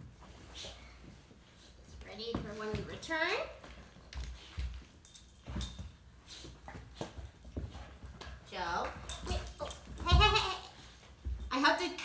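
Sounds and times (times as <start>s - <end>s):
dog whining and crying: 9.1s - 11.0s.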